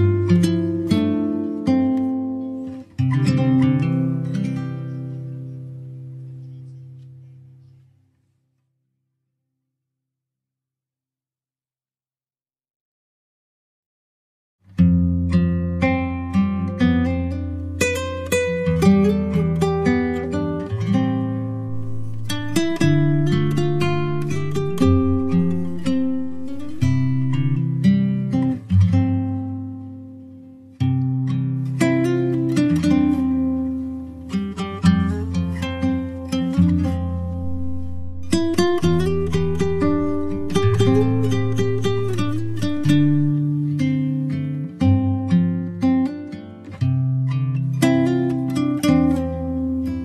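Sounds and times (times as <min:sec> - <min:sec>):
acoustic guitar strumming: 0:00.0 - 0:08.0, 0:14.7 - 0:50.0.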